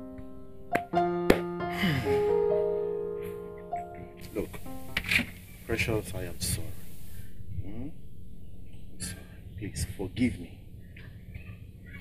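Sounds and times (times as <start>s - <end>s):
keyboard music with held notes: 0.0s - 6.3s.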